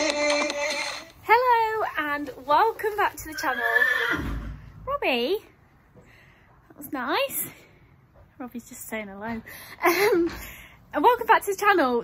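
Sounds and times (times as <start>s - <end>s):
horse whinnying: 3.4s - 4.6s.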